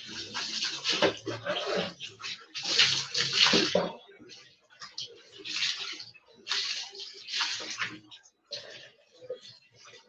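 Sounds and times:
water splashing on concrete: 0:00.0 - 0:04.0, 0:05.3 - 0:08.1.

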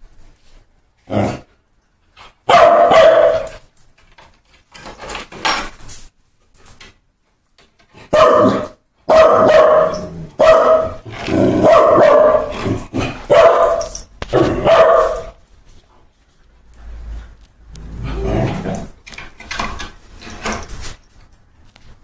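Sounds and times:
dog barking: 0:02.5 - 0:03.6, 0:08.1 - 0:11.0, 0:11.6 - 0:12.6, 0:13.3 - 0:15.4.

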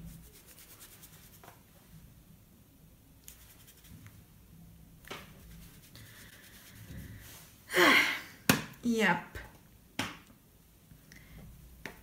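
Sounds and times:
hands rubbing and scratching: 0:00.0 - 0:01.6, 0:03.2 - 0:04.2, 0:05.2 - 0:07.0.

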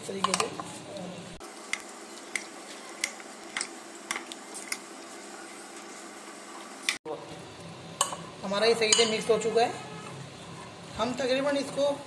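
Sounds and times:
spoon mixing chicken in bowl: 0:01.6 - 0:06.0.

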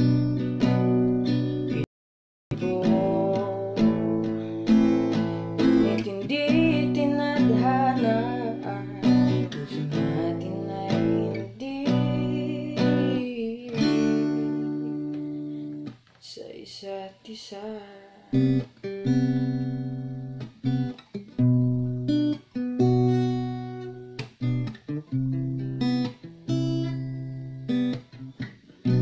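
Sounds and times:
strummed acoustic guitar: 0:00.0 - 0:01.9, 0:02.5 - 0:16.0, 0:18.3 - 0:29.0
person singing: 0:02.5 - 0:14.6, 0:16.3 - 0:18.5.

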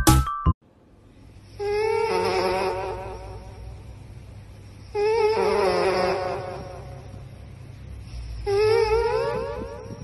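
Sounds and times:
cat snoring: 0:04.7 - 0:07.4, 0:08.0 - 0:10.0.

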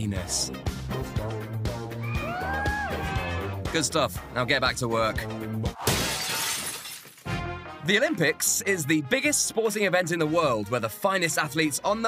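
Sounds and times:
glass breaking: 0:05.8 - 0:07.3.

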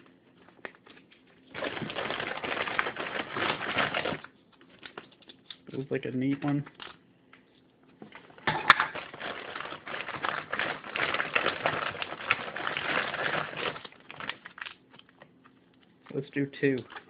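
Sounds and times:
plastic bag crinkling: 0:00.3 - 0:07.0, 0:08.2 - 0:17.0.

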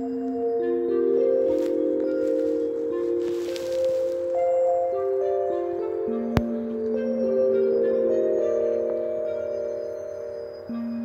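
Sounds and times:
calm ambient music with chimes: 0:00.0 - 0:11.0.

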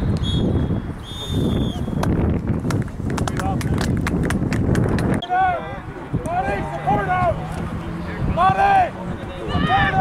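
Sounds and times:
high whistle-like tone: 0:00.0 - 0:02.0
wind buffeting microphone: 0:00.0 - 0:10.0.

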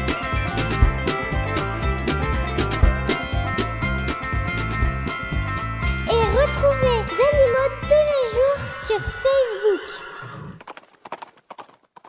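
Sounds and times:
horse hooves clip-clopping: 0:10.4 - 0:12.0.

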